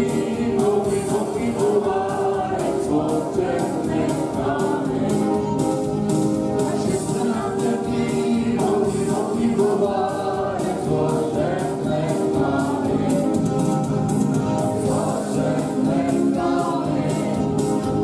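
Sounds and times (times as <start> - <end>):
group of voices singing: 0.0 - 18.0
keyboard: 0.0 - 18.0.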